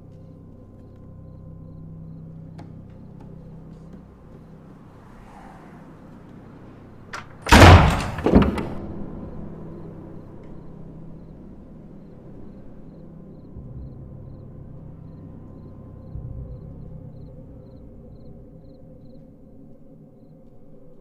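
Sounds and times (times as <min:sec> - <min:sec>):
low steady drone: 0:00.0 - 0:07.8, 0:08.8 - 0:21.0
loud bangs: 0:07.2 - 0:09.2.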